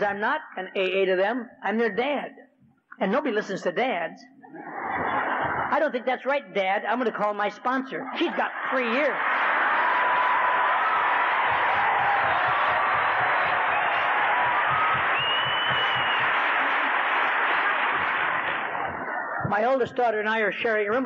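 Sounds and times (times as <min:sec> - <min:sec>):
large audience applauding: 0:08.6 - 0:19.8.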